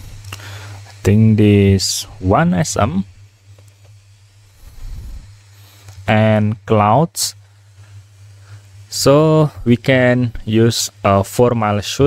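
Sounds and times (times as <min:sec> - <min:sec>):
low electrical hum: 0:00.0 - 0:12.0
breath on microphone: 0:00.3 - 0:00.9, 0:04.6 - 0:06.0.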